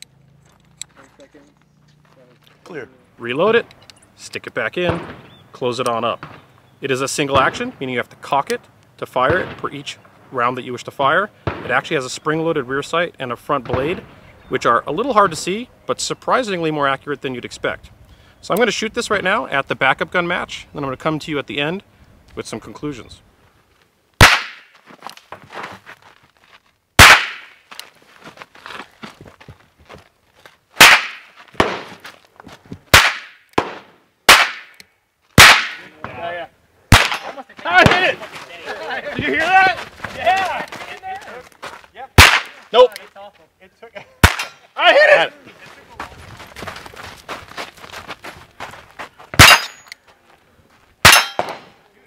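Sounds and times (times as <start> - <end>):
revolver gunshot: 4.8 - 5.4, 9.3 - 9.7, 11.4 - 11.8, 24.2 - 24.7, 27.0 - 27.6, 30.8 - 32.0, 32.9 - 34.8, 35.4 - 36.0, 36.9 - 38.2, 42.2 - 42.6, 44.2 - 44.6, 49.4 - 49.8, 51.0 - 51.8
revolver shots: 24.2 - 24.7, 27.0 - 27.6, 35.4 - 36.2, 36.9 - 38.2, 42.2 - 42.6.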